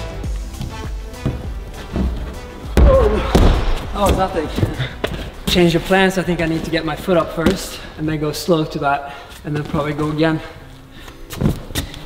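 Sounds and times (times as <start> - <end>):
background music: 0.0 - 12.0
heavy thud on crash mat: 2.7 - 4.5.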